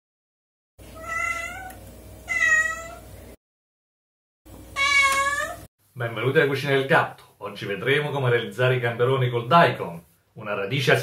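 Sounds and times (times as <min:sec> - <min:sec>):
cat meowing: 0:01.0 - 0:03.1, 0:04.8 - 0:05.7.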